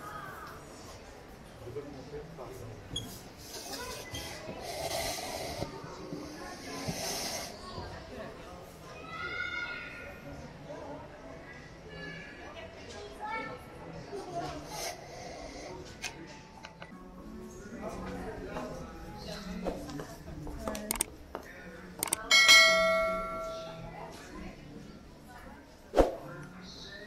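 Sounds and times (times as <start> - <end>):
crowd chatter in a hall: 0.0 - 27.0
bell-like chime: 22.3 - 23.8.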